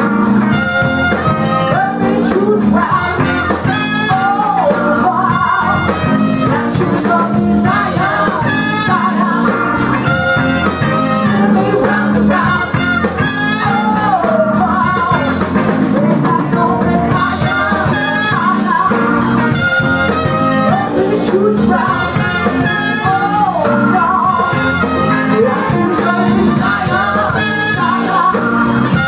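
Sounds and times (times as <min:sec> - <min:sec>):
blues band playing: 0:00.0 - 0:29.0
woman singing: 0:01.3 - 0:19.3, 0:20.0 - 0:29.0.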